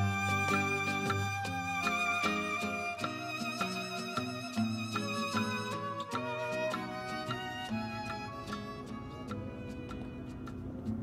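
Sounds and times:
violin melody with background music: 0.0 - 11.0.

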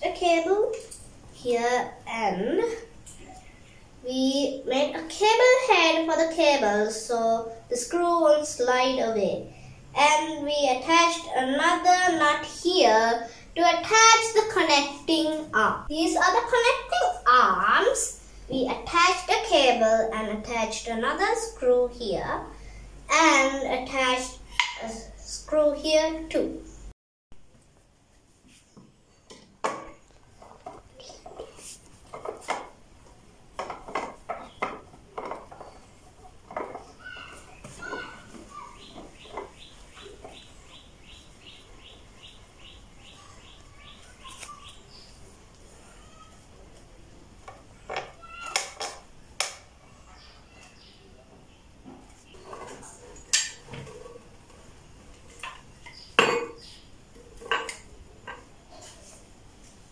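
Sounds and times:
wooden knocks: 28.8 - 32.8, 33.6 - 40.4
wooden parts clacking together: 29.3 - 32.8, 33.6 - 40.5, 47.4 - 49.7, 55.2 - 58.5.

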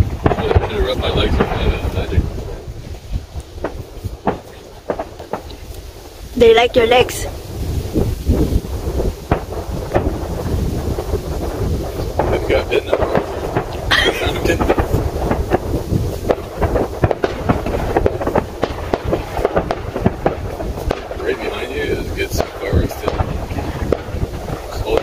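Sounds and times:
distant fireworks pops and crackles: 0.0 - 25.0
low fireworks booms: 0.0 - 25.0.

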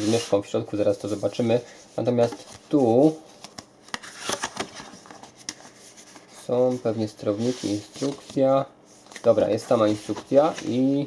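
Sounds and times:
cardboard rustling and scraping: 4.0 - 11.0.

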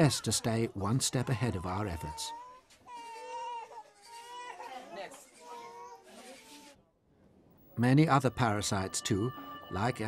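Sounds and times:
baby crying: 1.1 - 6.1.

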